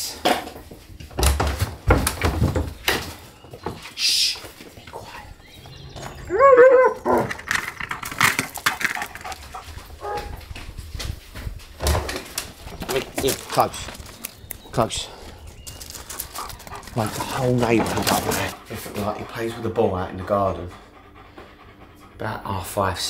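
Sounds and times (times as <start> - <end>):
knocks and clatter: 0.3 - 3.8, 7.0 - 9.6.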